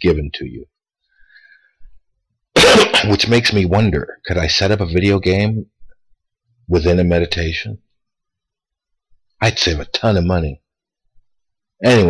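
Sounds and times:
man coughing: 0:02.6 - 0:03.2.

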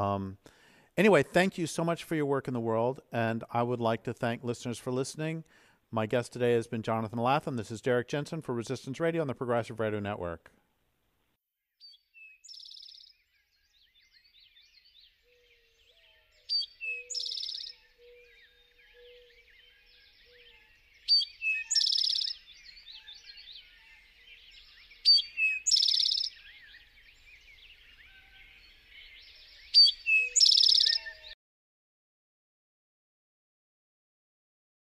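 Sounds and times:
birds chirping: 0:11.8 - 0:31.4
bird high note and buzzy trill: 0:21.1 - 0:22.5, 0:25.0 - 0:26.4, 0:29.7 - 0:31.4.

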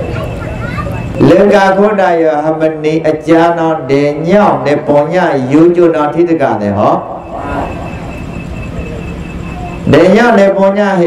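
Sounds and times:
faint pulsing high tone: 0:05.5 - 0:11.0
low hum: 0:06.1 - 0:10.1.

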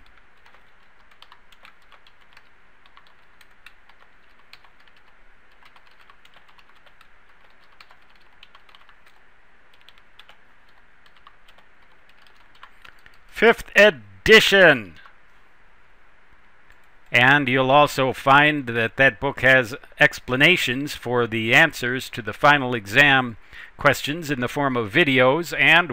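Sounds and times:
low steady hiss: 0:00.0 - 0:25.9.

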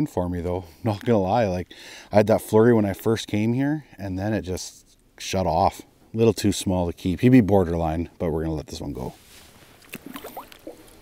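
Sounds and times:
faint water splashes: 0:09.2 - 0:11.0.

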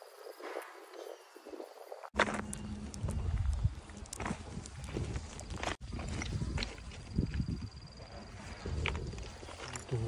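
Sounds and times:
footsteps crunching on stones: 0:02.1 - 0:10.0.

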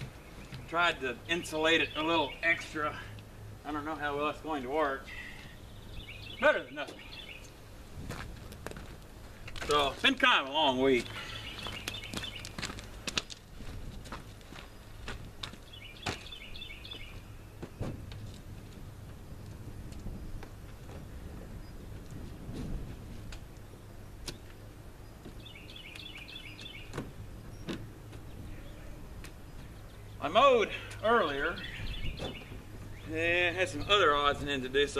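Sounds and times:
bird chirping: 0:00.0 - 0:03.2, 0:05.0 - 0:07.6, 0:10.9 - 0:12.6, 0:15.6 - 0:17.9, 0:23.6 - 0:34.3
wind rumble on microphone: 0:07.8 - 0:09.0, 0:13.5 - 0:15.5, 0:16.6 - 0:24.2, 0:31.6 - 0:33.0
footsteps on gravel: 0:08.0 - 0:19.2.

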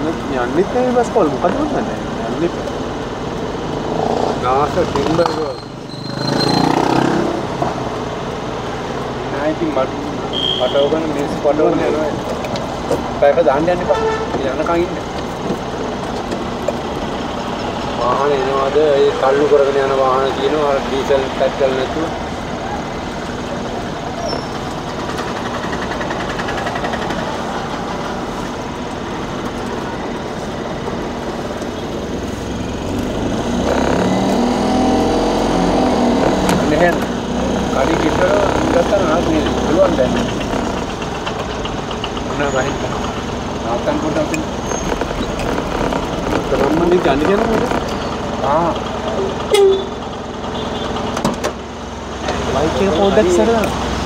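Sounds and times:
indistinct voices talking: 0:00.0 - 0:54.0
vehicle engine and road noise: 0:00.0 - 0:54.0.

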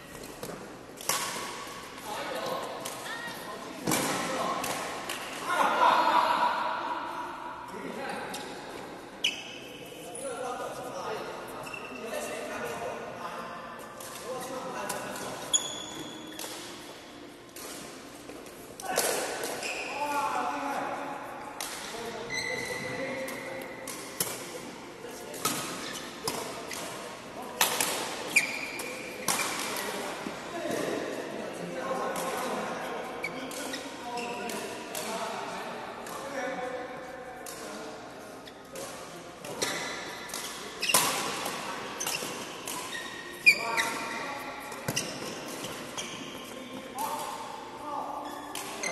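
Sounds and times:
shoes squeaking on court floor: 0:08.3 - 0:12.8, 0:14.3 - 0:20.3, 0:21.9 - 0:27.2, 0:28.2 - 0:31.1, 0:32.4 - 0:35.1, 0:38.4 - 0:48.9.

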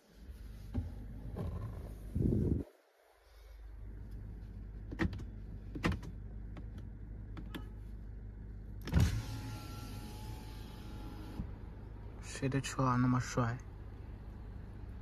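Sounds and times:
low steady hum: 0:00.0 - 0:15.0
power window motor running: 0:08.8 - 0:11.6.

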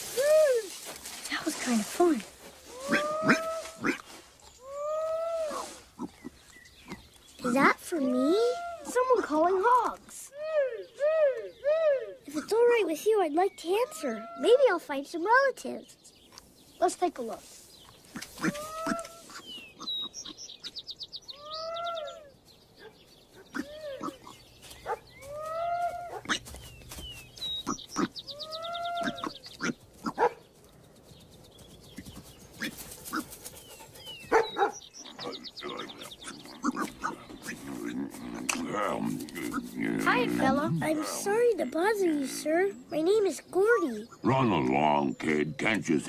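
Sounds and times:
farmyard animal calls: 0:00.0 - 0:15.6, 0:16.8 - 0:31.0, 0:31.6 - 0:46.0.

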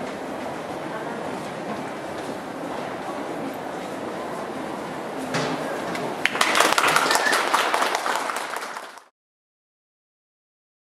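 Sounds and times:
subway station hum: 0:00.0 - 0:09.0
small audience clapping: 0:06.2 - 0:09.1.

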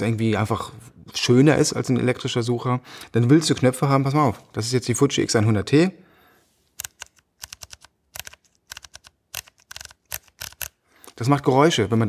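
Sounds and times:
camera dials and switches clicking: 0:06.8 - 0:11.2.

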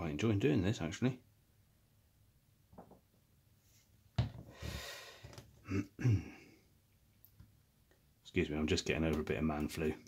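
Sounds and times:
man breathing noisily: 0:04.5 - 0:05.4
man clearing his throat: 0:05.6 - 0:06.4.

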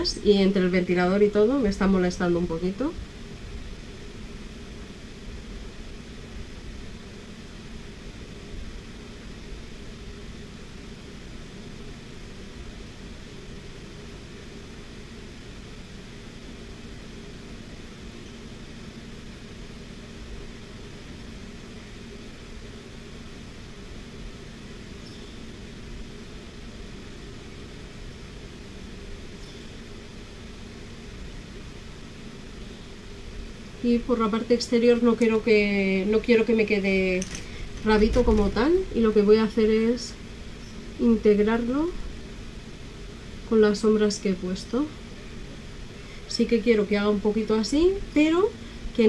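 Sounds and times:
electric fan whooshing: 0:00.0 - 0:49.0.

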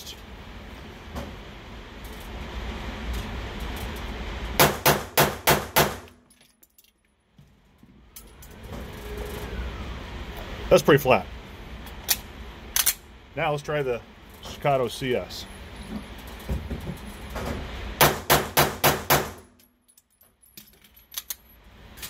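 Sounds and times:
pistol shots: 0:04.6 - 0:06.1, 0:18.0 - 0:19.4.

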